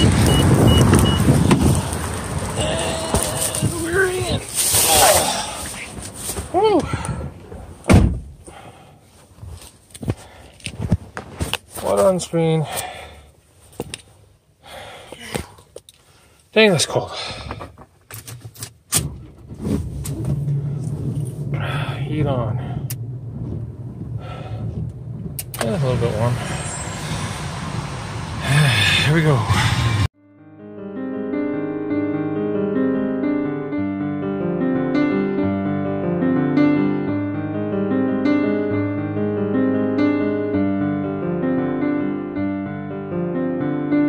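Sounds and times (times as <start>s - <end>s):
car door opening: 7.2s - 8.4s
dense rumbling noise: 19.2s - 30.1s
car engine idling: 20.0s - 30.1s.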